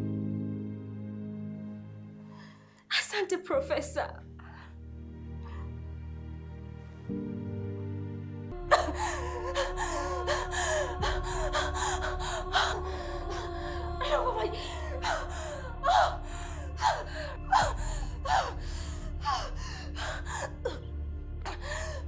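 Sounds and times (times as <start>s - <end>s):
background music with drone: 0.0s - 2.8s, 4.2s - 22.0s.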